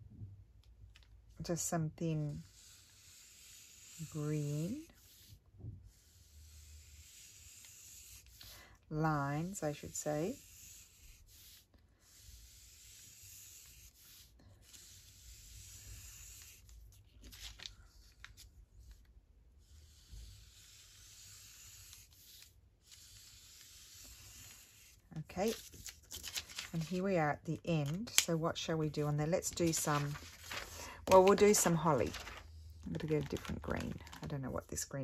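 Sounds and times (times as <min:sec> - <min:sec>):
marker scratching on paper: 0:02.3 - 0:08.5, 0:09.3 - 0:16.8, 0:19.6 - 0:25.6.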